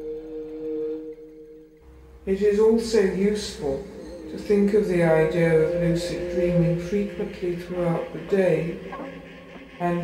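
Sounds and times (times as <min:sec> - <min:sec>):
ambient electronic music: 0:00.0 - 0:10.0.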